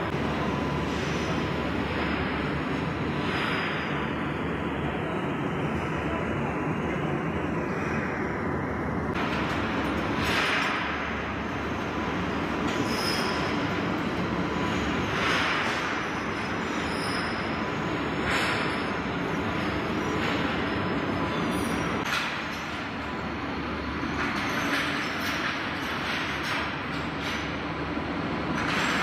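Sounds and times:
machinery rumble and hiss: 0.0s - 29.0s.

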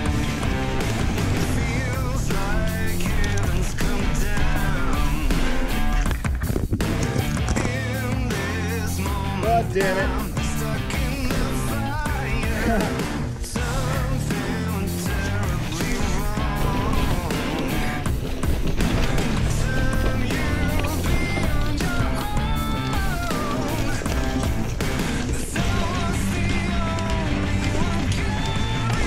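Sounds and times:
rock music: 0.0s - 29.0s.

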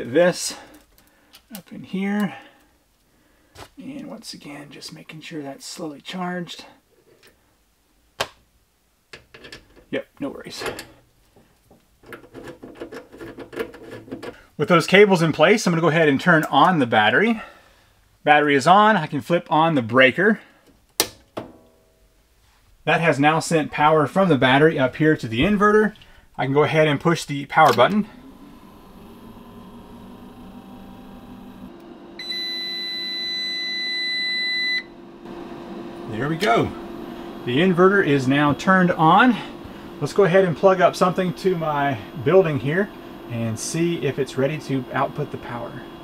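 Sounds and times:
low hum: 23.6s - 46.0s
inverter buzzer long beep: 28.2s - 46.0s.

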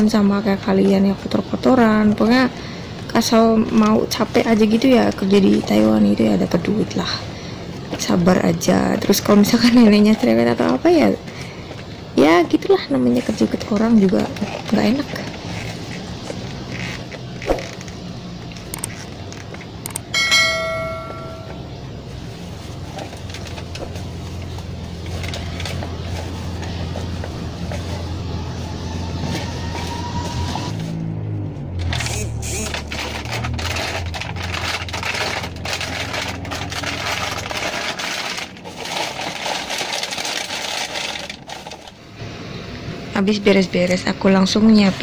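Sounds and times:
hard object clinking: 20.1s - 21.6s
rubbish clattering: 31.7s - 42.0s
plastic bag crinkling: 31.8s - 42.0s.

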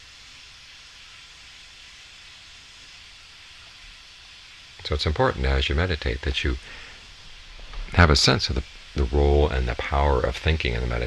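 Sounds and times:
steady hiss: 0.0s - 11.0s
faint low rumble: 5.4s - 11.0s.

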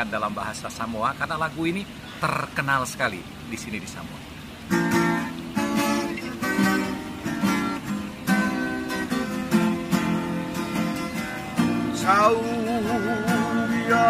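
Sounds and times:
acoustic guitars strumming chords: 0.1s - 14.0s.

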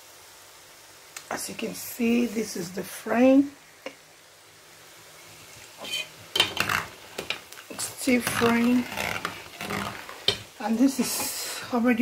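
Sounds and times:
dough deep-frying in oil: 0.0s - 12.0s
metal spoon scraping a pot: 5.8s - 11.4s.

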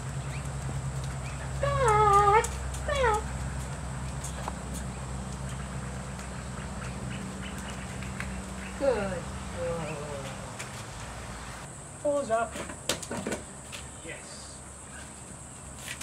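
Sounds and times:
steady low hum: 0.0s - 12.0s
woman's sing-song call: 1.6s - 3.3s.

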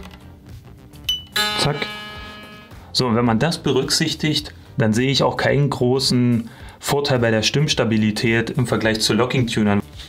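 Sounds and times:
electric guitar string twanging: 1.3s - 2.8s.

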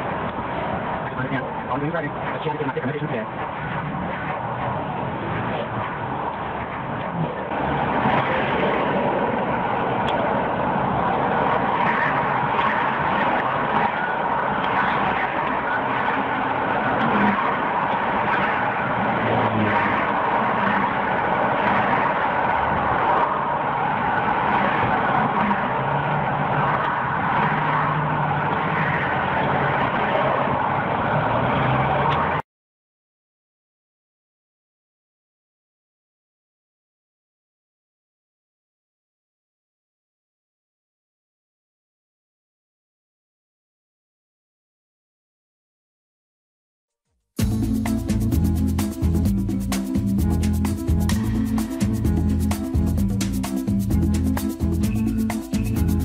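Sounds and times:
car engine and road noise: 0.0s - 32.4s, 47.4s - 56.0s.

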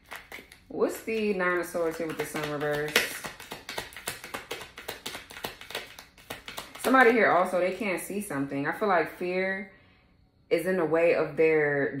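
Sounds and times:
cards being shuffled: 0.0s - 7.2s.

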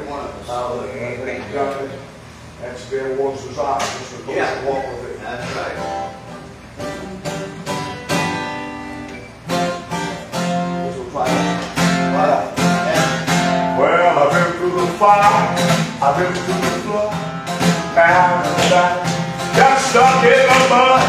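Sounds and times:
acoustic guitar strumming chords: 5.4s - 21.0s.

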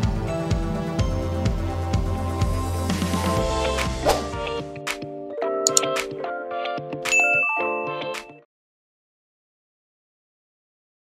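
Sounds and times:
bright bell ding: 7.1s - 8.0s.

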